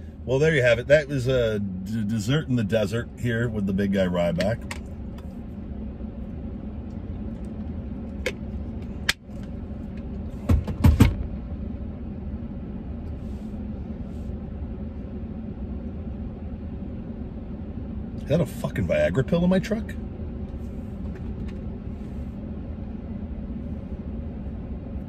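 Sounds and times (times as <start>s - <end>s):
truck engine idling hum: 0.0s - 25.0s.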